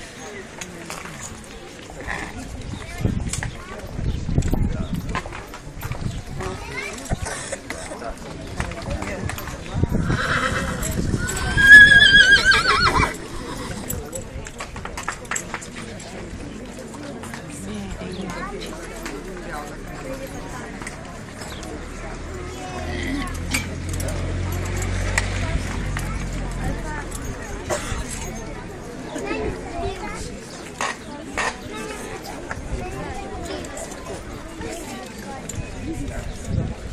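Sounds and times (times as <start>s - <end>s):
people talking in crowd: 0.0s - 36.9s
child's voice: 6.4s - 7.2s
horse whinnying: 10.0s - 13.9s.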